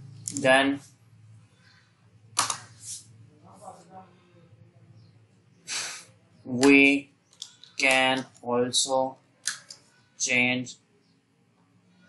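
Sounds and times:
breathy hiss: 5.7 - 6.2.

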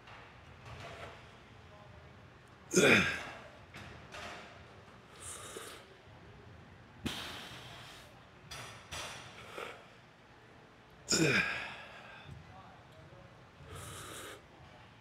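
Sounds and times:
man grunting: 2.7 - 3.3, 11.1 - 12.0
man breathing hard: 7.1 - 8.1, 11.2 - 12.4, 13.7 - 14.4.

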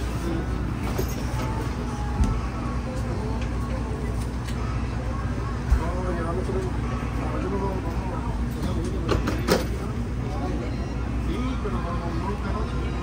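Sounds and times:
bus engine low rumble: 0.0 - 13.0.

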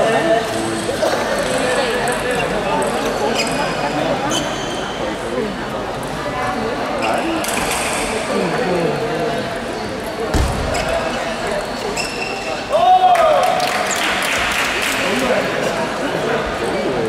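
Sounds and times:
people chattering in echoing hall: 0.0 - 17.0.

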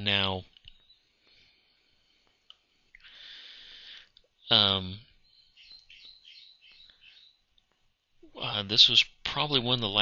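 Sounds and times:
faint high chirps: 4.4 - 7.5.

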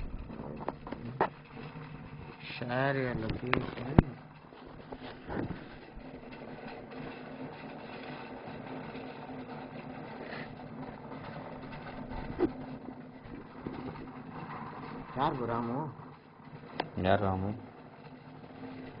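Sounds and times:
faint clicks and knocks: 0.0 - 19.0
steady low hum: 0.0 - 19.0.

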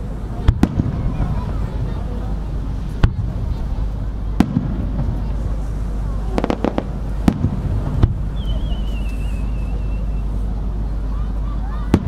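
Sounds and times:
fireworks bursting: 0.0 - 10.4
steady low rumble: 0.0 - 12.0
thin wavering whistle: 8.3 - 10.4.

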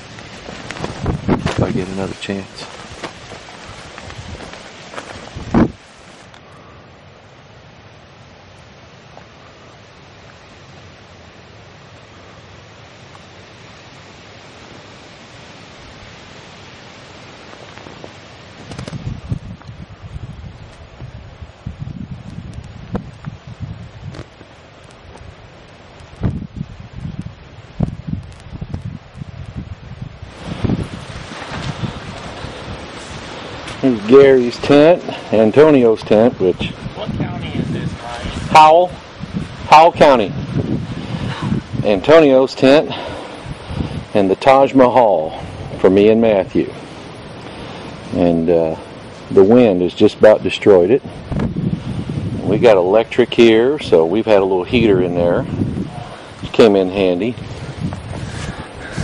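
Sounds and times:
wind buffeting microphone: 0.0 - 6.3, 18.0 - 44.4, 45.3 - 59.0
faint hiss: 0.0 - 59.0.

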